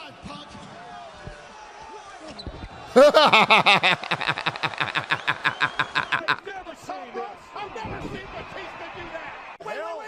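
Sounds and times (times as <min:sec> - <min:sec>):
man laughing loudly: 0:02.9 - 0:06.4.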